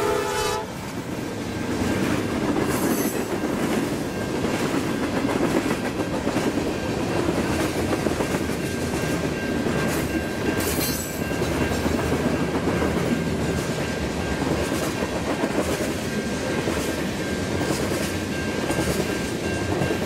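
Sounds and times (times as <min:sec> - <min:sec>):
train horn chord: 0:00.0 - 0:00.8
freight train rumbling: 0:00.0 - 0:20.0
wheels clacking on rails: 0:00.8 - 0:20.0.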